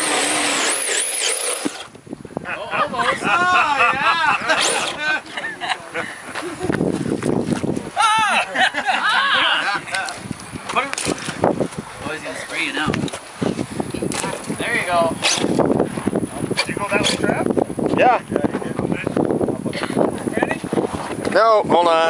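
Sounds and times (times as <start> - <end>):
people talking and calling out: 2.4 - 22.0.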